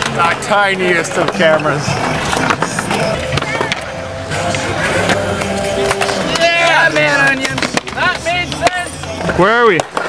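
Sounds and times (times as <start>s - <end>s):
background music: 0.0s - 10.0s
skateboard clacks: 0.0s - 10.0s
skateboard wheels rolling on concrete: 0.0s - 10.0s.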